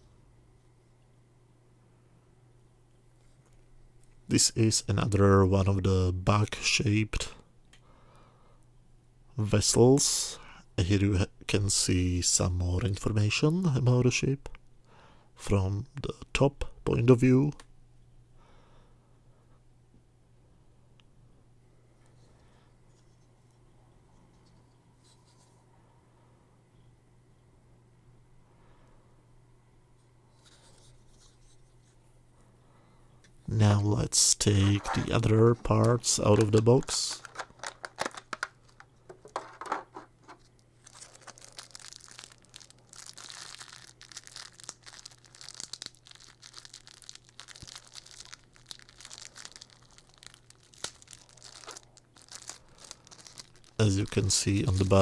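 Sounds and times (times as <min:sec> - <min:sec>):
steady low hum: 0:00.0 - 0:55.0
fingers rustling on plastic model: 0:34.4 - 0:55.0
plastic packaging crinkling: 0:34.6 - 0:55.0.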